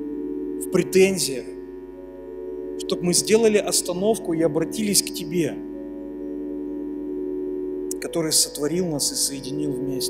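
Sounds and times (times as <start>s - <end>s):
keyboard sustained chord: 0.0s - 10.0s.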